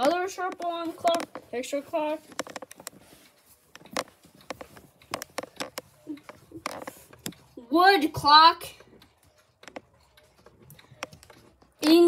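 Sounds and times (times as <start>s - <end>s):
mechanical clocks ticking: 0.0s - 12.0s.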